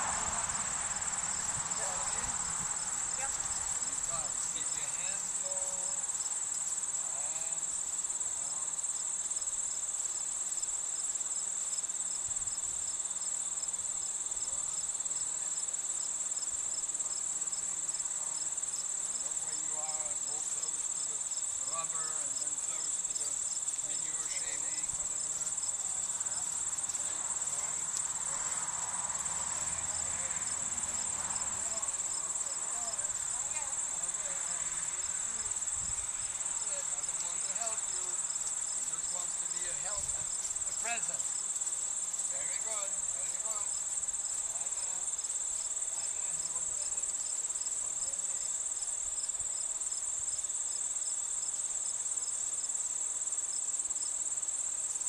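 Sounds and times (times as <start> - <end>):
insect chorus trilling: 0.0 - 55.0.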